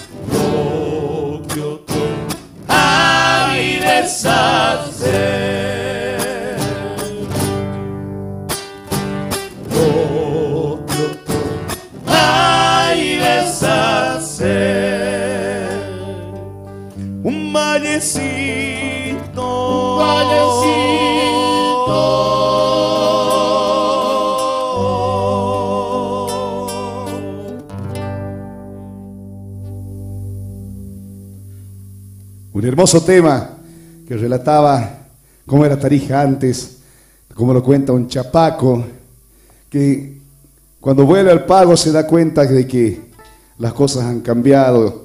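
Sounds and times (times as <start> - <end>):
people singing: 0.0 - 7.7, 9.6 - 16.5, 17.2 - 27.8
electric bass: 0.0 - 35.1
strummed acoustic guitars: 0.0 - 35.4, 43.0 - 43.8.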